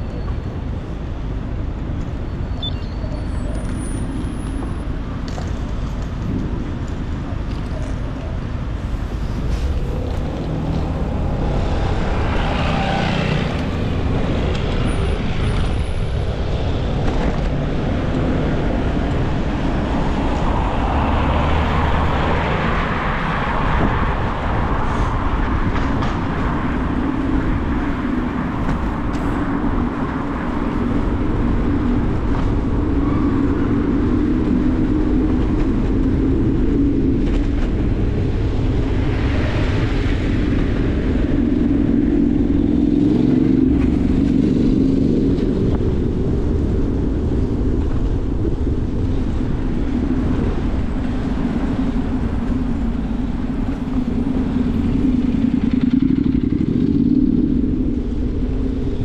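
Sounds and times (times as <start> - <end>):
city traffic: 0.0 - 59.0
low hum: 5.6 - 23.2.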